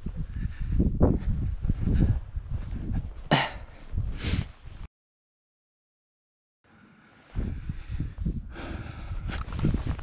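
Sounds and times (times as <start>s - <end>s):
man clearing his throat: 3.3s - 3.7s.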